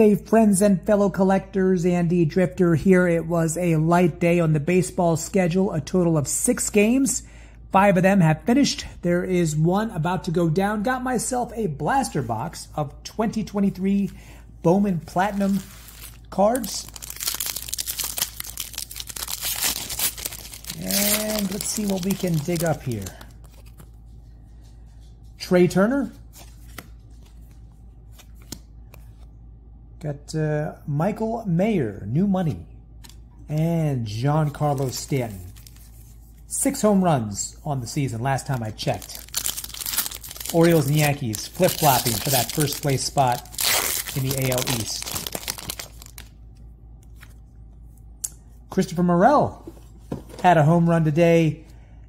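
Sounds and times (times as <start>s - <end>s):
low steady hum: 0.0s - 52.0s
foil wrapper crinkling: 15.1s - 24.1s, 34.6s - 36.1s, 38.4s - 46.3s.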